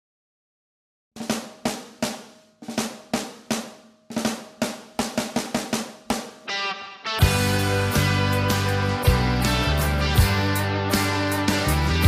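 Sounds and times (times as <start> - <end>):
snare drum playing: 1.2 - 6.6.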